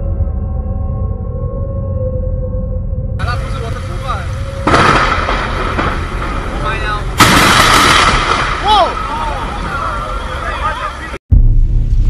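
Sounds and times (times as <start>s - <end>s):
heavy rain: 3.2s - 11.2s
wind: 3.2s - 12.0s
thunder cracks: 4.5s - 10.4s.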